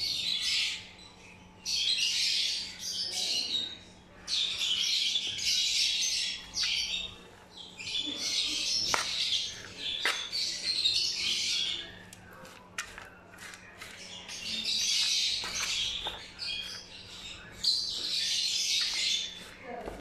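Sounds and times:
lovebirds chattering: 0:00.0 - 0:20.0.

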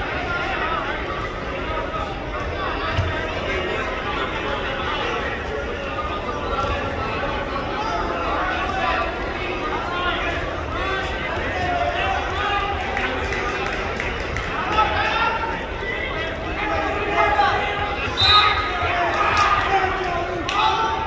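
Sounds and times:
people shouting and calling out: 0:00.0 - 0:21.0.

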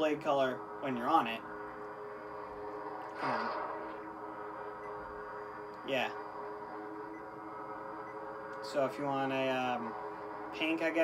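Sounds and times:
lightsaber idle hum: 0:00.0 - 0:11.0.

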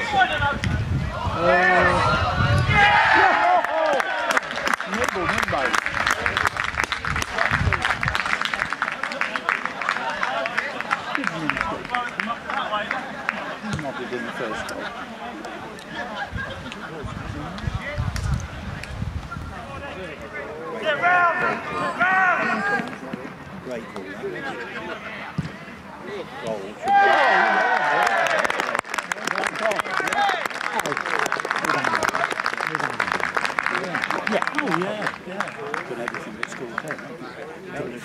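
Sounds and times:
men talking and calling: 0:00.0 - 0:38.0
crowd shouting: 0:01.1 - 0:04.7, 0:26.8 - 0:28.7
scattered applause: 0:02.4 - 0:13.7, 0:26.8 - 0:37.7.

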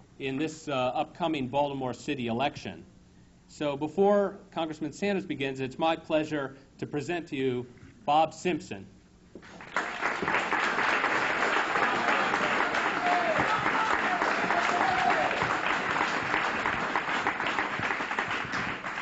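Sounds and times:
audience applauding: 0:09.4 - 0:19.0.

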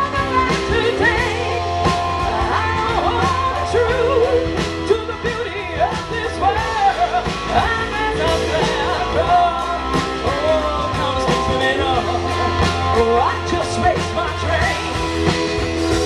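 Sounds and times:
bending lead guitar melody: 0:00.0 - 0:16.0
live rock band playing: 0:00.0 - 0:16.0.

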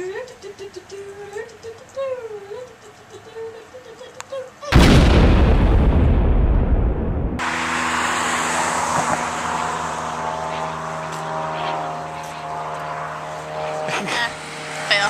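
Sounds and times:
low rushing noise: 0:04.8 - 0:07.9
engine-like drone: 0:06.7 - 0:15.0.

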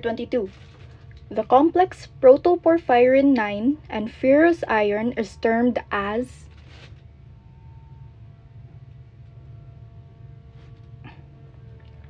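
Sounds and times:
faint sustained tones: 0:00.0 - 0:12.0
low steady hum: 0:00.0 - 0:12.0.

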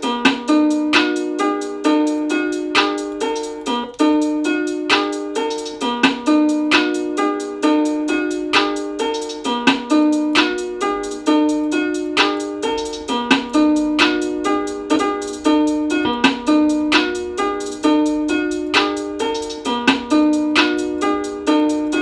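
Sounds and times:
synth melody loop: 0:00.0 - 0:22.0.

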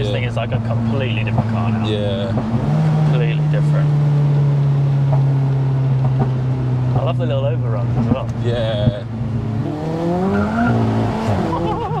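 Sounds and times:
car engine accelerating hard: 0:00.0 - 0:12.0.

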